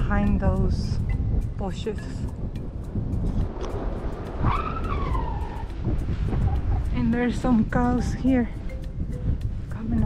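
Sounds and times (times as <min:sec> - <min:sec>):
wind buffeting microphone: 0:00.0 - 0:10.0
high whistling call: 0:04.4 - 0:05.8.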